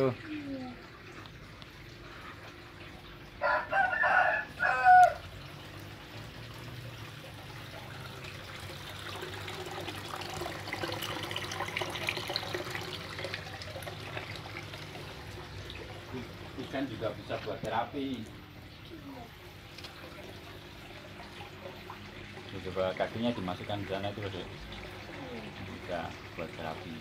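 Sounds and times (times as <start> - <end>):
rooster crowing: 3.4 - 5.3.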